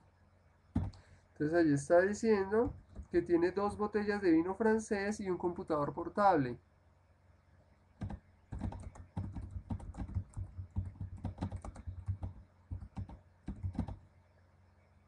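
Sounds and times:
typing on computer keyboard: 0.8s - 1.0s, 2.6s - 3.2s, 8.0s - 14.0s.

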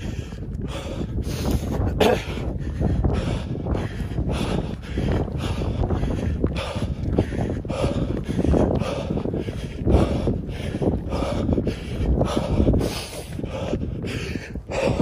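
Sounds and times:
man breathing heavily: 0.0s - 15.0s
wind buffeting microphone: 0.0s - 15.0s.

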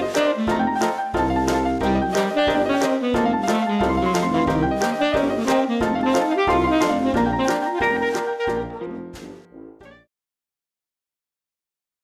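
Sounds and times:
closing music: 0.0s - 10.1s.

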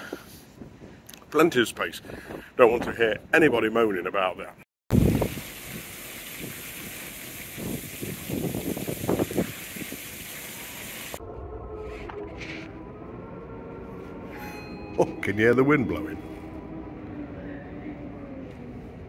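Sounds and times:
wind rushing: 7.5s - 10.2s.

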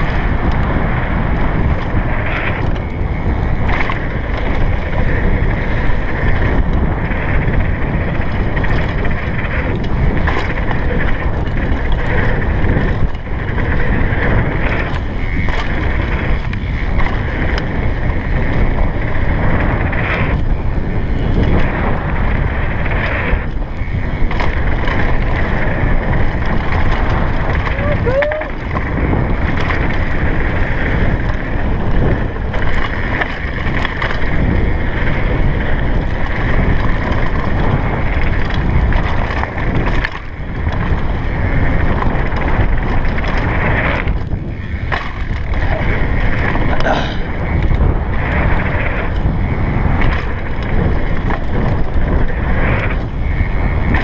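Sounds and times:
bike rattling and knocking: 0.0s - 54.0s
bike tyre roar on dirt: 0.0s - 54.0s
wind rush on microphone: 0.0s - 54.0s.

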